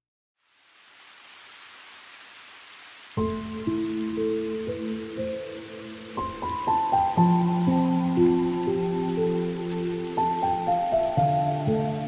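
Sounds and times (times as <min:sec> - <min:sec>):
rain hissing: 0:00.4 - 0:12.0
music with held notes: 0:03.2 - 0:12.0.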